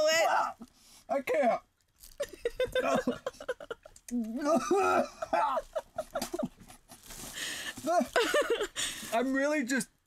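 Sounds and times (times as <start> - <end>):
man gagging: 2.7 - 3.4, 4.1 - 6.4
man breathing hard: 7.3 - 7.8.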